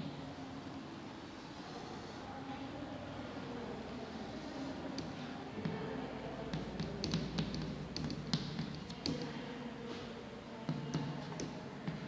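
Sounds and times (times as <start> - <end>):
chalk tapping on a blackboard: 6.5 - 9.3, 10.7 - 12.0.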